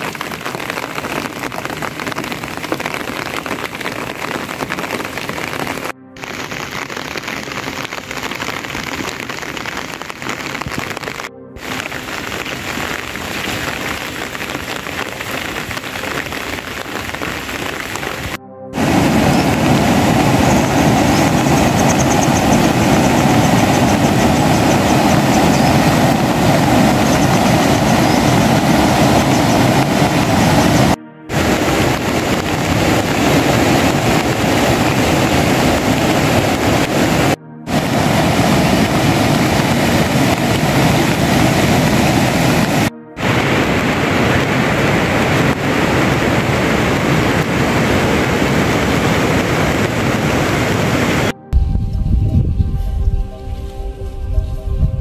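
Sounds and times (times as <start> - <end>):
river rushing: 0.0 - 51.3
steady rain falling: 0.0 - 51.3.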